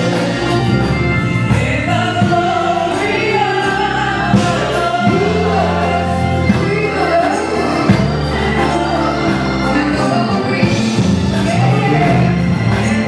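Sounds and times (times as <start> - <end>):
group singing gospel: 0.0 - 13.0
sustained bass notes: 0.0 - 13.0.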